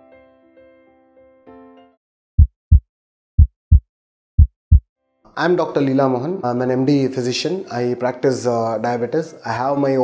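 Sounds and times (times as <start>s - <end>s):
heartbeat thumps: 2.4s - 4.8s.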